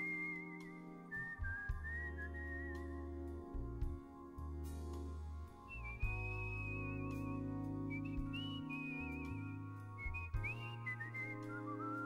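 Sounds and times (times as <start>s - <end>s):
man whistling a melody: 0.0s - 3.6s, 5.7s - 12.0s
bass notes: 0.0s - 12.0s
organ chords: 0.0s - 12.0s.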